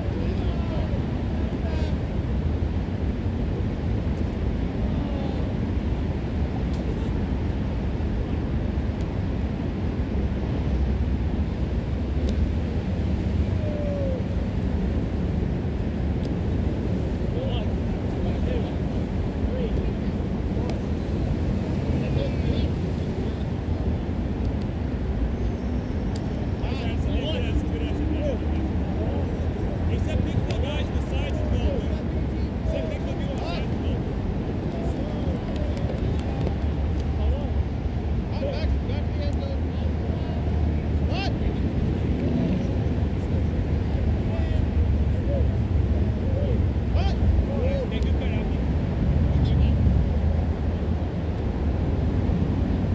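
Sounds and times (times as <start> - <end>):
steady low rumble: 0.0 - 52.9
players shouting and calling: 13.2 - 14.6, 26.6 - 37.6, 38.2 - 42.6, 43.8 - 48.6.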